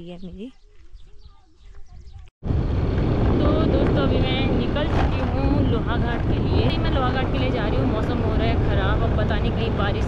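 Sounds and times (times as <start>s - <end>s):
woman talking: 0.0s - 0.6s, 3.4s - 10.0s
wind buffeting microphone: 0.0s - 10.0s.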